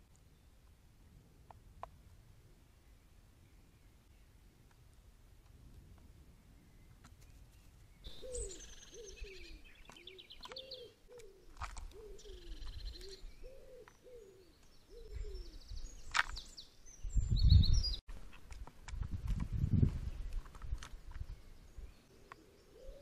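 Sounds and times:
small birds chirping: 0:06.4 - 0:18.0, 0:20.0 - 0:23.0
pigeon cooing: 0:08.1 - 0:15.6, 0:22.4 - 0:23.0.

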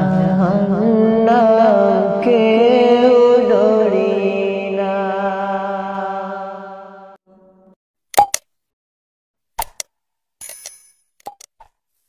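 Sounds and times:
double click sound effect: 0:08.2 - 0:08.5.

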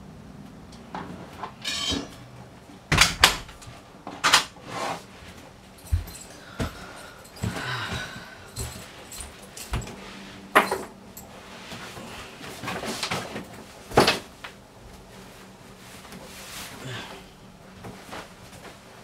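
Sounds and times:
person moving about a room: 0:00.4 - 0:19.0.

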